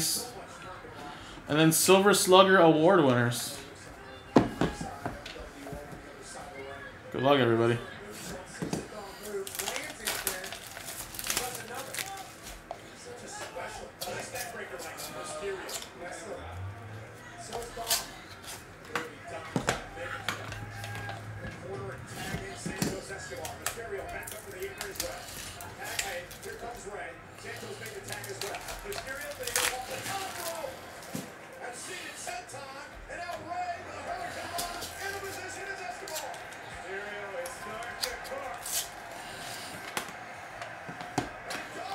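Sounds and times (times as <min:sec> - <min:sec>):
foil packs rustling: 0:09.0 - 0:12.7, 0:22.2 - 0:31.3, 0:33.5 - 0:36.6.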